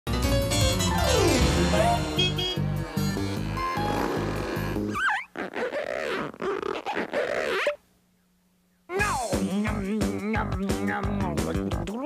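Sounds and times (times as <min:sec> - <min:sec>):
cartoon background music: 0:00.1 - 0:05.1, 0:08.9 - 0:12.0.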